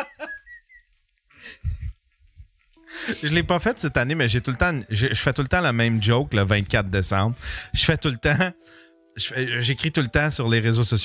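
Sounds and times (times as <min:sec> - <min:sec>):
man laughing high-pitched: 0:00.0 - 0:00.8.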